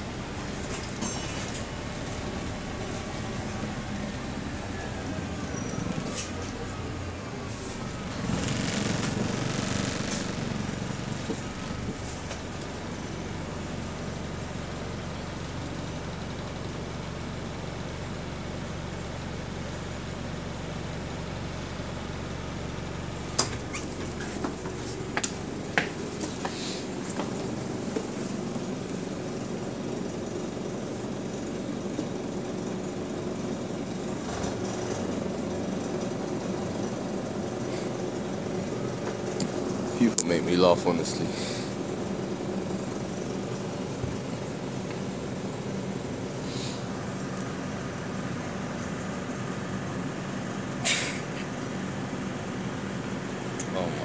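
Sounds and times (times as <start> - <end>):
bus engine droning: 0.0 - 54.0.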